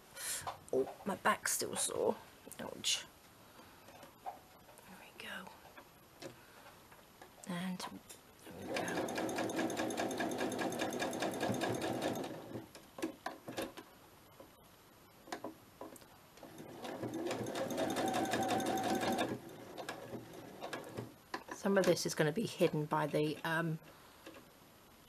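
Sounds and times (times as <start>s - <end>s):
sewing machine stitching: 8.5s - 12.7s, 16.4s - 21.1s.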